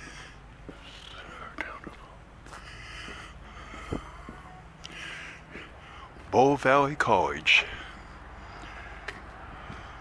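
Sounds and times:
soft footsteps on pavement: 0:00.0 - 0:10.0.

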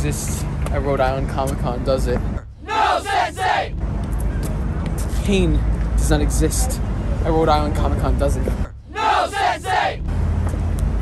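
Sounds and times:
group shouting in unison: 0:02.6 - 0:03.8, 0:08.9 - 0:10.0.

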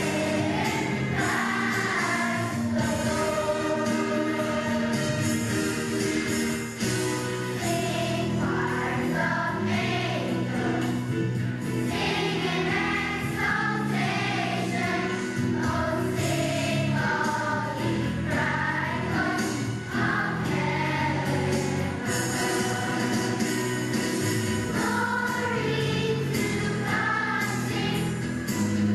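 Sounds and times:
children's choir singing: 0:00.0 - 0:28.9
musical accompaniment: 0:00.0 - 0:28.9.

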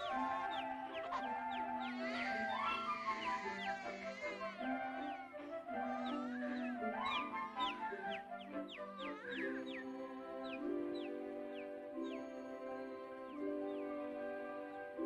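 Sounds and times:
orchestral music soft held notes: 0:00.0 - 0:15.0
whistled birdlike chirps: 0:00.0 - 0:15.0.

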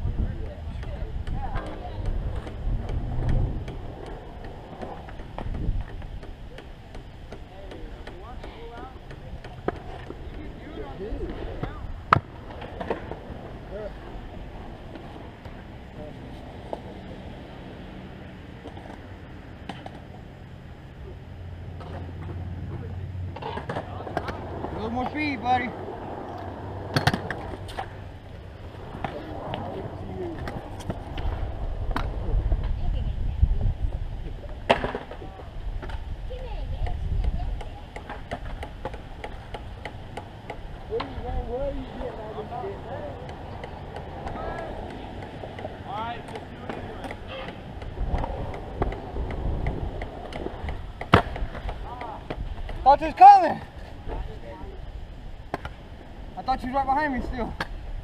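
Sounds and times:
distant voices: 0:00.0 - 0:58.0
skateboards clacking on concrete: 0:00.3 - 0:15.7, 0:21.7 - 0:32.8, 0:34.5 - 0:54.4.

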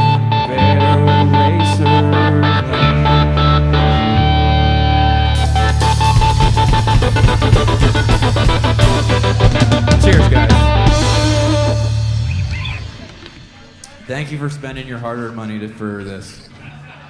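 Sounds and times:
electric guitar: 0:00.0 - 0:14.0
live country band playing: 0:00.0 - 0:16.4.

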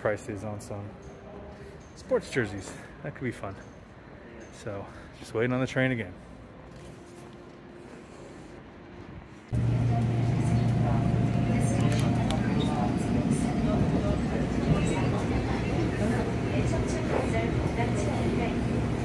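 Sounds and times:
subway train rumbling on rails: 0:07.6 - 0:19.0.

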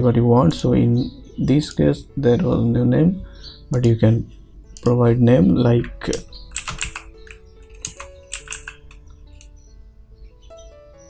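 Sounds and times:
quiet background music: 0:00.0 - 0:11.0
keyboard keystrokes: 0:06.1 - 0:09.5.

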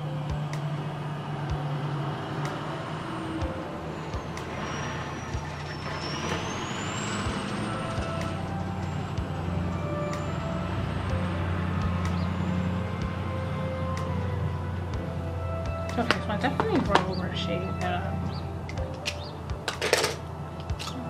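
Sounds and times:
heavy vehicle engine running: 0:00.0 - 0:21.0
thin high squeal: 0:04.0 - 0:09.1.

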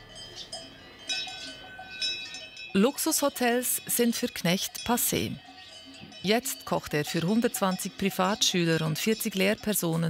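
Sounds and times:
cowbells clanking: 0:00.0 - 0:10.0.

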